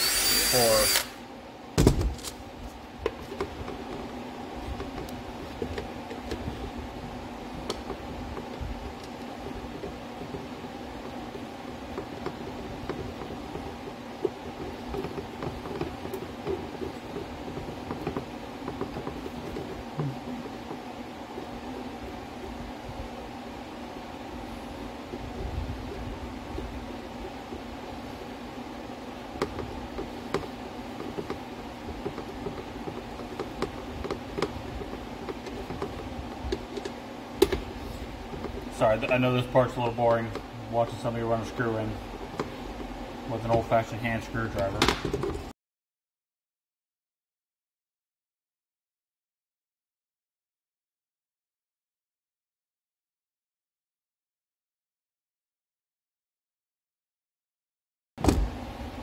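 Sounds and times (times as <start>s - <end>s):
steady mechanical hum: 0.0s - 45.6s, 58.2s - 59.0s.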